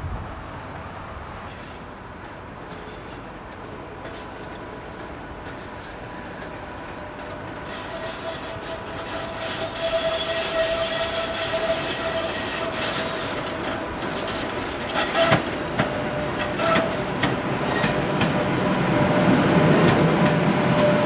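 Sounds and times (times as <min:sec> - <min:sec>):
train wheels rumbling on rails: 0:00.0 - 0:21.0
wheels clacking over rail joints: 0:01.4 - 0:21.0.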